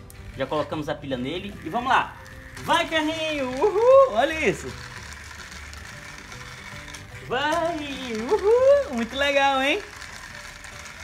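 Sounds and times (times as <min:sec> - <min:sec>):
background music with low bass: 0:00.0 - 0:11.0
toy car motor running: 0:00.0 - 0:11.0.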